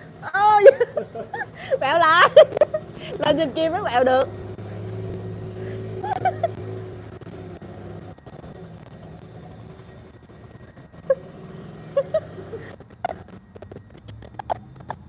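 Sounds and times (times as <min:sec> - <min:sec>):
motorcycle engine running: 0:00.0 - 0:15.0
voices or laughter: 0:00.1 - 0:04.0, 0:05.5 - 0:07.0, 0:11.0 - 0:13.4.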